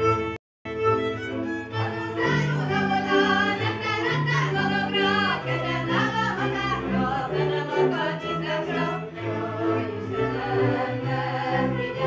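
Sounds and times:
fiddles playing: 0:00.0 - 0:12.0
women singing: 0:01.8 - 0:12.0.

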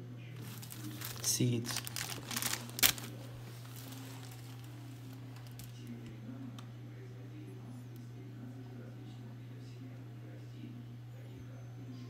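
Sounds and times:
faint room noise: 0:00.0 - 0:12.0
steady low hum: 0:00.0 - 0:12.0.

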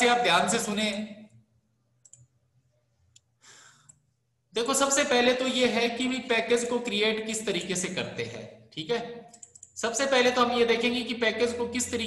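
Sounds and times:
computer mouse clicks: 0:02.0 - 0:02.3, 0:09.3 - 0:09.8.

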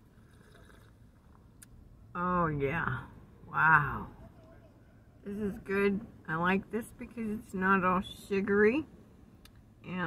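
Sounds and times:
low steady car rumble: 0:00.0 - 0:10.0.

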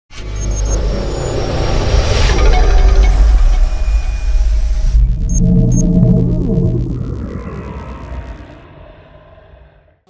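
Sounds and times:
deep cinematic rumble: 0:02.1 - 0:10.0
faint high glinting tones: 0:04.9 - 0:08.4.

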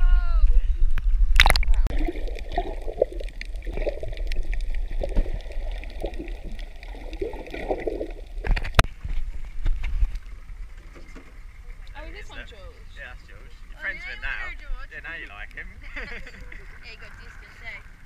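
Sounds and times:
faint crackles: 0:00.4 - 0:12.2, 0:14.4 - 0:18.0
gurgling underwater: 0:01.2 - 0:08.9.

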